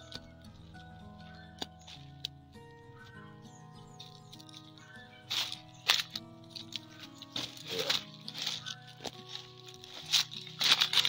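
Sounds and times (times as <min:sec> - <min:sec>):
music of long held notes: 0:00.0 - 0:11.0.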